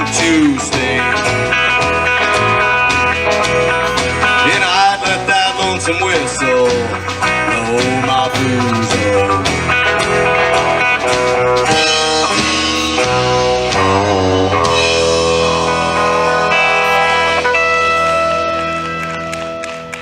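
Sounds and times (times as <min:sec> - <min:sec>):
country-rock band playing: 0:00.0 - 0:20.0.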